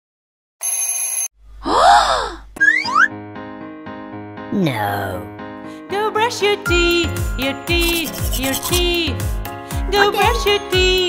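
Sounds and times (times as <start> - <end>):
startled vocal exclamation: 1.6 - 2.5, 4.5 - 5.3.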